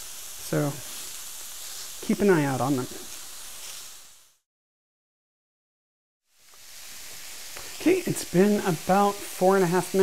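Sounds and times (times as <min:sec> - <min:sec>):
sausage patties sizzling on griddle: 0:00.0 - 0:04.4, 0:06.2 - 0:10.0.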